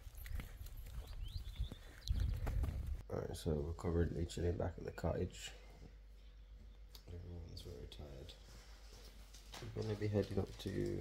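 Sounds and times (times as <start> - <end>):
man speaking softly: 3.0 - 5.7, 7.0 - 8.5, 9.6 - 11.0.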